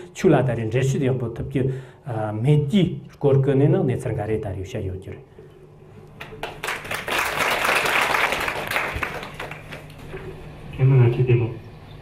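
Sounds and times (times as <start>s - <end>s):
audience applause: 6.2s - 10.0s.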